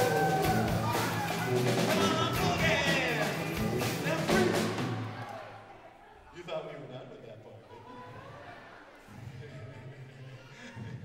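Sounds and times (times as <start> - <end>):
acoustic band playing: 0.0 - 5.3
drum hits: 0.0 - 5.3
voices singing: 0.0 - 5.6.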